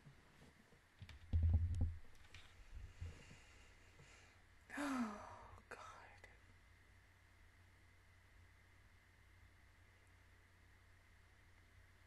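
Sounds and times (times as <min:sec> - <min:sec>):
whisper-like breaths: 0:03.0 - 0:06.4
woman humming softly: 0:04.7 - 0:06.3.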